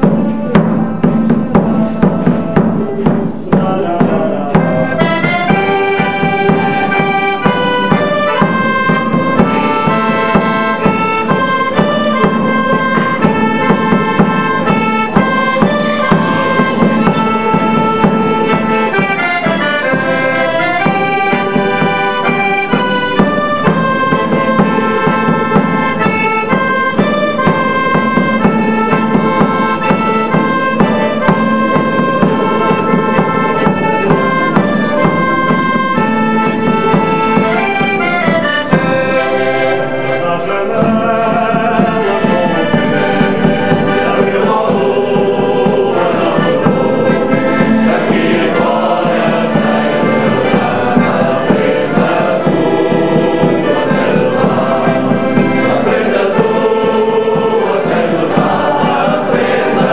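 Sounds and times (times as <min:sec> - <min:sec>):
accordion melody: 0:00.0 - 0:59.9
acoustic guitars: 0:00.0 - 0:59.9
mandolin: 0:00.0 - 0:59.9.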